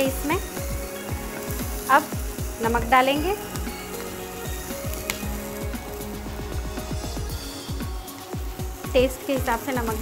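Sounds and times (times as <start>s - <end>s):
background music: 0.0s - 10.0s
vegetables sizzling in a pan: 0.0s - 10.0s.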